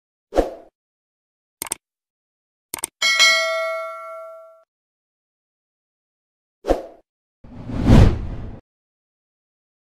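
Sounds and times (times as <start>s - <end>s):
whoosh: 7.5s - 8.6s.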